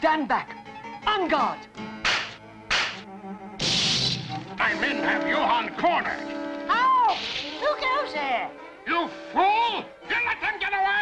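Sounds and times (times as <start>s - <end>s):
faint background music: 0.0s - 11.0s
cartoon swishing hits: 3.6s - 4.3s.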